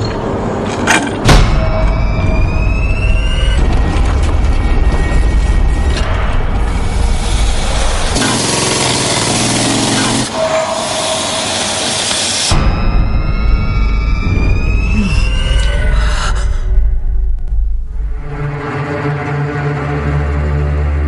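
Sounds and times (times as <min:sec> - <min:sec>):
film trailer music: 0:00.0 - 0:21.0.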